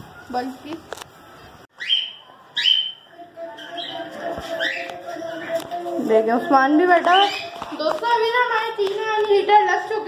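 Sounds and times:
bird whistled call: 1.8 - 3.0.

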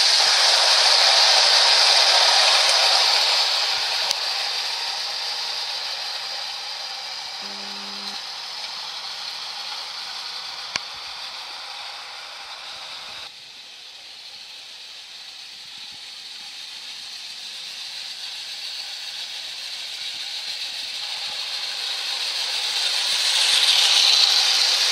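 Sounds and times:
clockwork toy train whirring rattle: 0.0 - 24.9.

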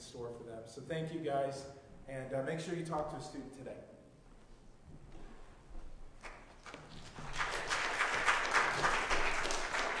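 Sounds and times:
congregation applauding: 6.2 - 10.0.

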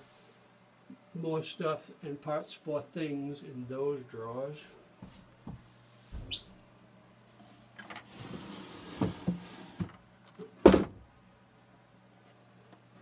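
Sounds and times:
wooden drawer sliding open: 7.9 - 10.0.

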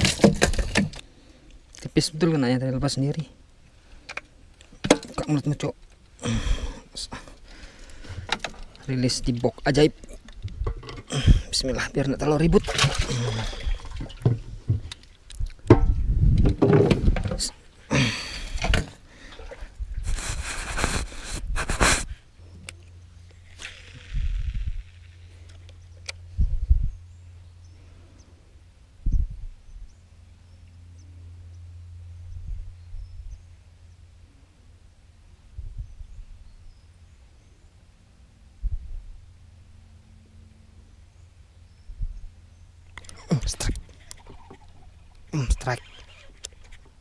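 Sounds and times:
wooden hatch knocking and scraping: 0.0 - 1.0, 15.6 - 17.5
low steady hum: 0.0 - 47.0
short hiss: 20.0 - 22.2.

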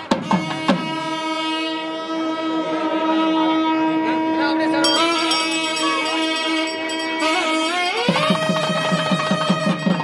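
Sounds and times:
wind instrument long note: 0.2 - 10.0.

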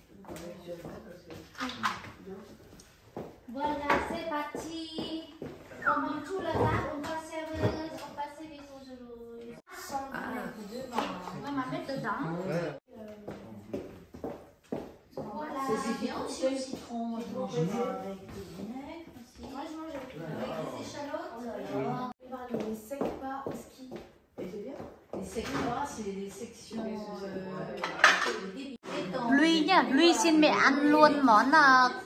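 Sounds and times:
footsteps on tiled floor: 0.0 - 8.0, 13.0 - 20.4, 22.3 - 26.8
cutlery and plates clinking: 27.7 - 28.6.

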